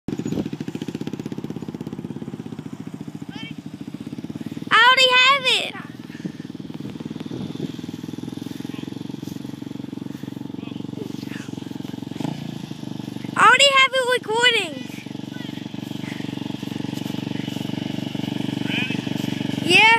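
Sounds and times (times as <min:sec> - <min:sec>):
quad bike engine droning: 0:00.1 - 0:19.9
high-pitched yells: 0:04.7 - 0:05.9.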